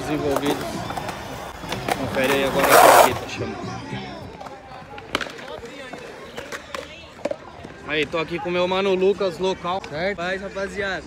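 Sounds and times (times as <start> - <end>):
faint background talk: 0.0 - 11.0.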